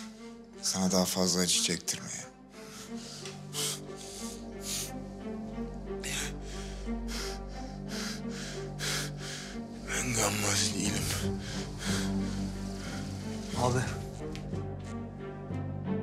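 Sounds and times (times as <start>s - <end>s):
man breathing heavily: 0.0s - 0.5s, 2.5s - 15.0s
tense music with low drone: 0.0s - 16.0s.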